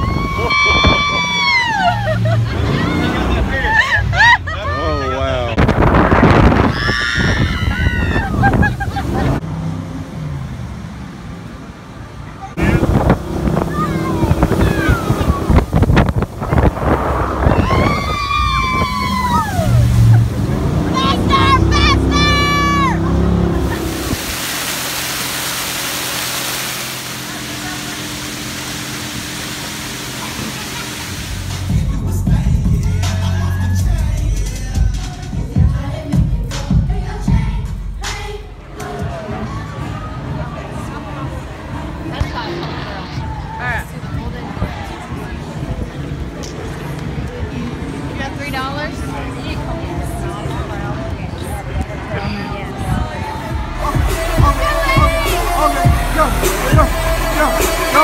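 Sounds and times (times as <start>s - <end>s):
rush of wind and water: 0.0s - 3.7s, 4.8s - 32.0s, 40.8s - 58.0s
people shouting and whooping: 0.0s - 5.6s, 6.5s - 9.4s, 13.6s - 15.8s, 16.5s - 24.1s, 52.2s - 58.0s
motorboat engine: 7.7s - 32.7s, 44.3s - 58.0s.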